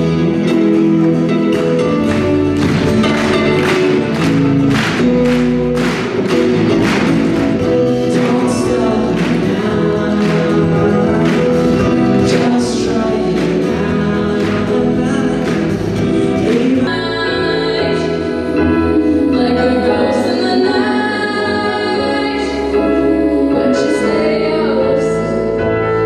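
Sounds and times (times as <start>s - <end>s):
electric guitar chords strummed: 0.0s - 26.0s
person singing: 6.9s - 26.0s.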